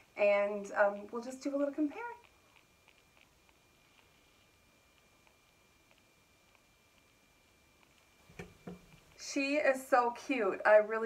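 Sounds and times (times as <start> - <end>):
tiny ticks: 1.8 - 4.1, 4.9 - 7.2, 7.8 - 9.4.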